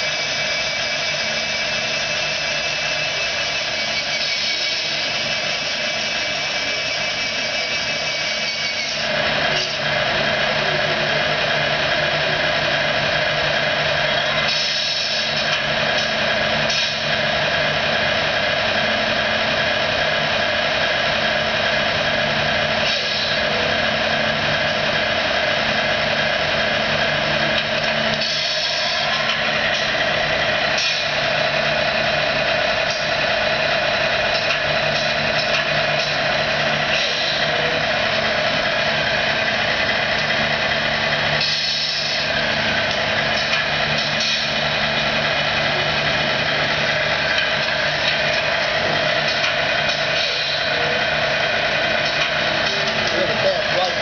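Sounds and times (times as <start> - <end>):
diesel truck idling: 0.0 - 54.0.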